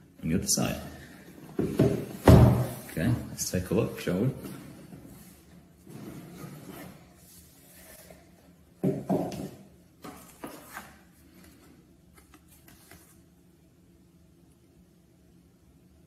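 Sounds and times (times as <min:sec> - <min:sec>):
light paper handling: 0:10.0 - 0:13.2.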